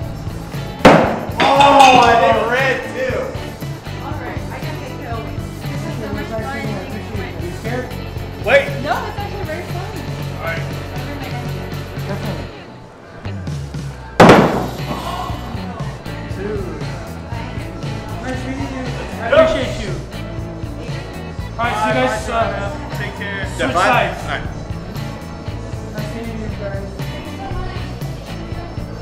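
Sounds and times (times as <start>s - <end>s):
background music: 0.0s - 29.0s
axe striking wooden board: 0.8s - 1.5s, 14.2s - 15.0s.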